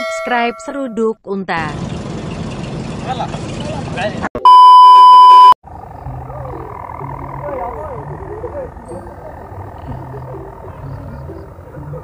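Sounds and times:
camels rumbling: 0:05.7 - 0:12.0
camel high call: 0:05.8 - 0:12.0.

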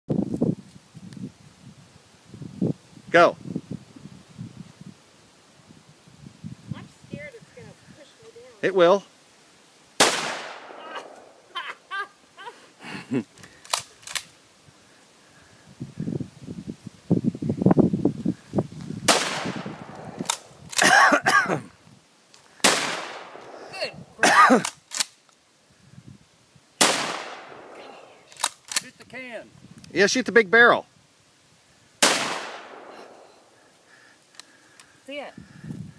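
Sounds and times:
shotgun shot: 0:10.0 - 0:11.2, 0:19.1 - 0:20.5, 0:22.6 - 0:23.6, 0:26.8 - 0:28.0, 0:32.0 - 0:33.2.

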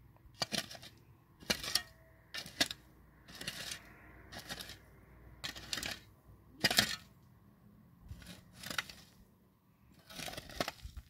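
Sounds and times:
shovel digging gravelly soil: 0:00.3 - 0:07.2, 0:08.0 - 0:09.3, 0:09.9 - 0:11.0.

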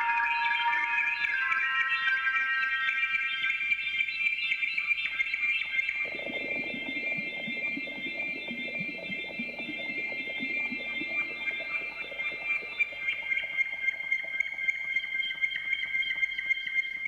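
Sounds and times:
sustained high synthesizer tones: 0:00.0 - 0:03.8, 0:06.0 - 0:12.9
fast patter of low blips: 0:06.0 - 0:13.0.

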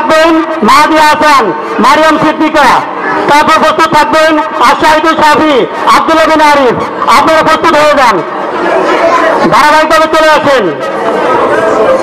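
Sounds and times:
man speaking: 0:00.0 - 0:08.3, 0:09.4 - 0:10.9
crowd chatter in a large hall: 0:00.0 - 0:12.0.

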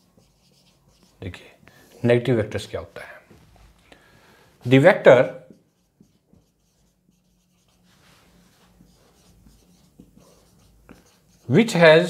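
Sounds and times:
marker pen on whiteboard: 0:00.0 - 0:01.6, 0:04.7 - 0:12.0.

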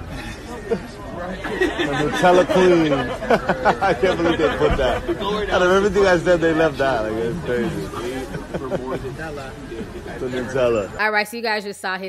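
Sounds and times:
background chatter of voices: 0:00.0 - 0:12.0
man speaking: 0:00.8 - 0:11.0.

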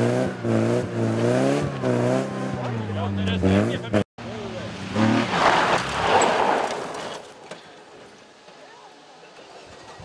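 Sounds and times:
car engine: 0:00.0 - 0:08.5
gravel spraying from tyres: 0:04.9 - 0:07.4.

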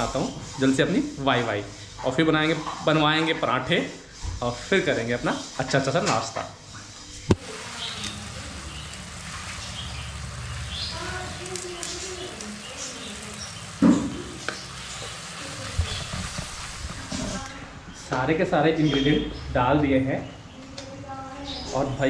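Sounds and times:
gravy sizzling in a wok: 0:00.0 - 0:18.1
wooden spatula stirring: 0:06.8 - 0:18.2.

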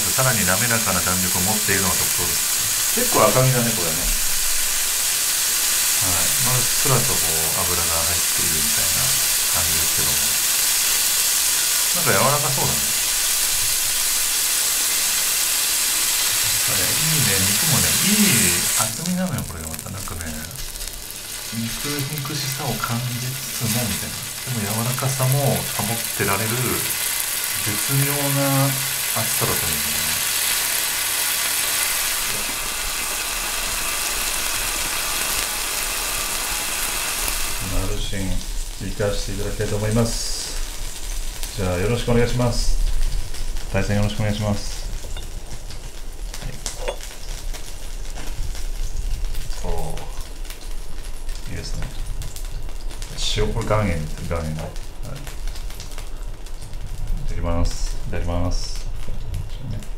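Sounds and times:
meat sizzling on grill plate: 0:00.0 - 0:59.9.

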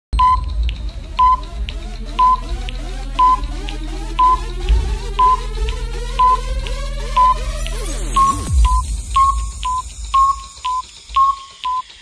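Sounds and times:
low drone: 0:00.2 - 0:11.2
rising synth tone: 0:00.2 - 0:11.2
soft clock-like ticks: 0:00.2 - 0:12.0.

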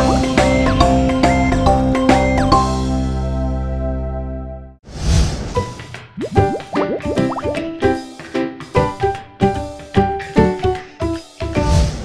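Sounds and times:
rising sliding notes: 0:06.2 - 0:07.8
jingle music with steady beat: 0:06.4 - 0:07.7.

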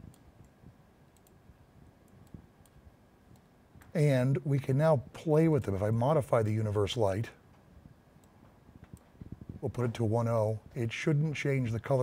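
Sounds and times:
low room noise: 0:00.0 - 0:12.0
faint computer mouse clicks: 0:01.2 - 0:01.4.

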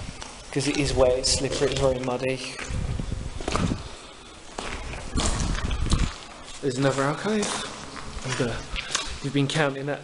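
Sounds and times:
footsteps on wet muddy floor: 0:00.1 - 0:09.6.

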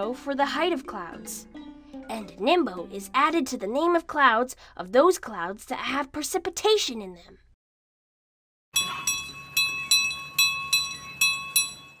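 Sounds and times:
bell chimes jingle: 0:08.8 - 0:12.0.

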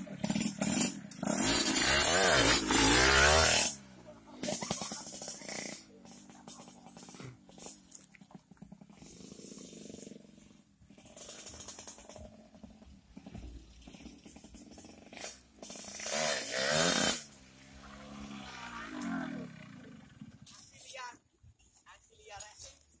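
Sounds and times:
motorcycle engine revving: 0:00.0 - 0:20.8.

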